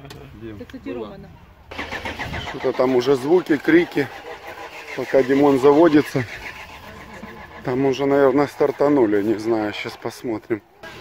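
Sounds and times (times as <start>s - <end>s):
vehicle engine idling: 1.7s - 11.0s
nearby voices: 2.4s - 11.0s.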